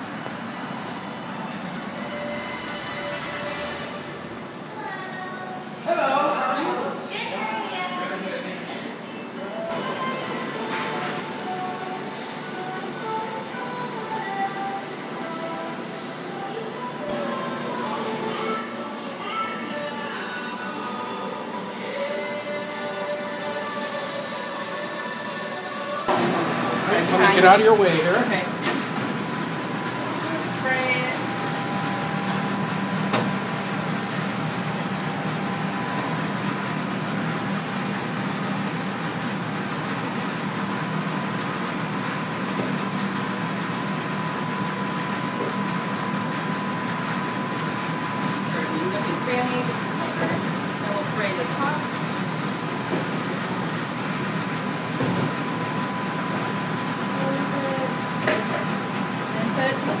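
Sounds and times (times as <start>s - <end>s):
kitchen equipment humming: 0.0s - 60.0s
hiss: 51.9s - 55.6s.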